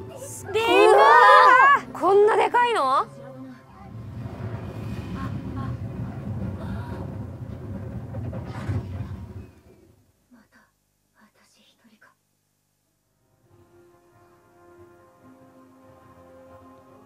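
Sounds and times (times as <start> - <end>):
film soundtrack playing: 0.0 - 9.8, 13.2 - 17.0.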